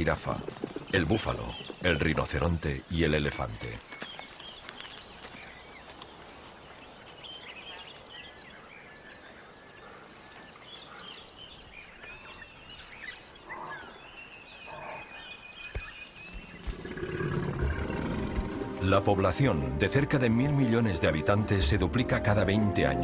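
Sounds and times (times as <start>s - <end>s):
birds chirping: 0.0s - 23.0s
music: 17.6s - 23.0s.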